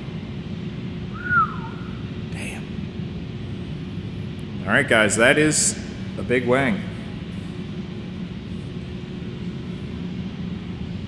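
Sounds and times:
steady low hum: 0:00.0 - 0:11.0
person whistling: 0:01.1 - 0:02.0.

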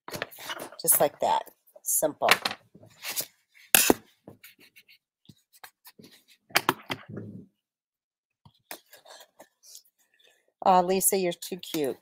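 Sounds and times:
paper rustling and scraping: 0:02.8 - 0:03.4.

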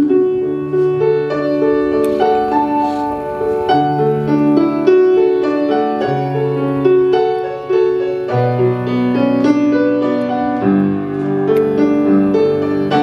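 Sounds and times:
solo piano: 0:00.0 - 0:13.0.

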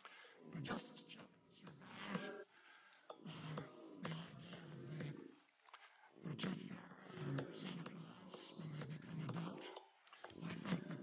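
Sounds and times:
old man speaking slowly: 0:00.0 - 0:02.4.

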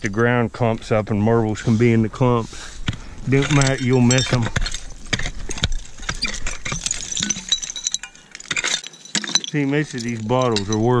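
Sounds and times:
rake scraping stony soil: 0:01.5 - 0:07.1
glass and stones clinking: 0:03.3 - 0:11.0.

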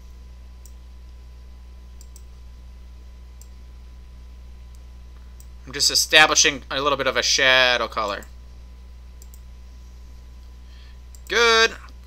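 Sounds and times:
steady low hum: 0:00.0 - 0:12.0
computer mouse clicks: 0:02.0 - 0:02.3, 0:09.2 - 0:09.5, 0:11.1 - 0:11.3.

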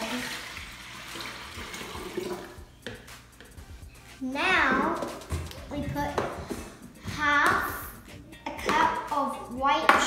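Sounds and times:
water pouring into glass jug: 0:00.0 - 0:02.6.

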